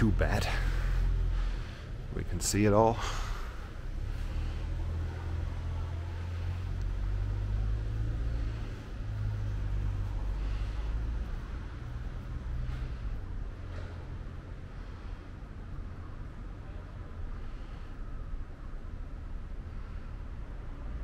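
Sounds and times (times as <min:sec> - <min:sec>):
vehicle engine rumbling: 0:00.0 - 0:21.0.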